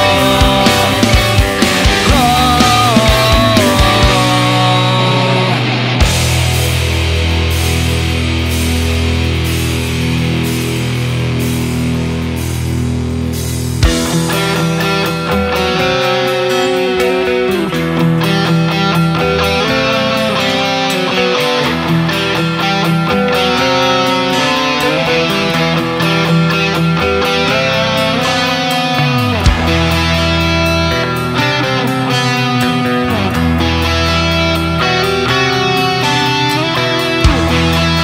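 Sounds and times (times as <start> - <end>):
instrumental hard rock: 0.0 - 38.0.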